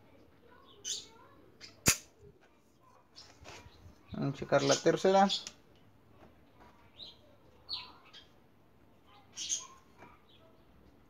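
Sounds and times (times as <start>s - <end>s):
sharp click: 1.8s - 2.1s
faint handling noises: 2.2s - 4.2s.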